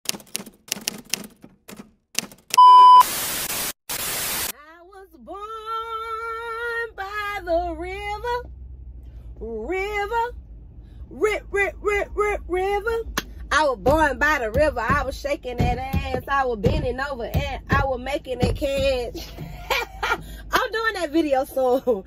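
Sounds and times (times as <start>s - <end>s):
typewriter-like clicks: 0.1s - 2.6s
loud steady electronic beep: 2.6s - 4.5s
static hiss bursts: 2.9s - 4.5s
low engine hum: 4.8s - 22.0s.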